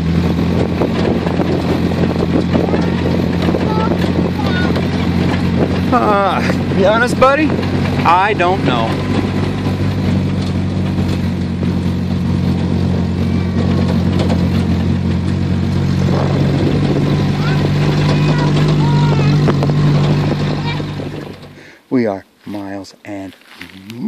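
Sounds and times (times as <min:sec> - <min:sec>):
vehicle engine at low speed: 0:00.0 - 0:22.8.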